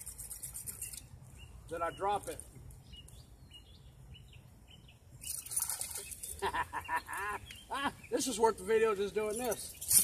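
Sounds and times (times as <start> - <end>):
faint bird chirps: 0.0 - 8.5
dog splashing in water: 5.2 - 6.3
man laughing: 6.4 - 8.0.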